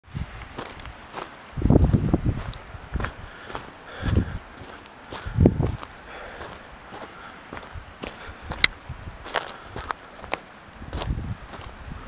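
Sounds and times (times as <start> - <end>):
footsteps crunching on gravel: 0.1 - 11.9.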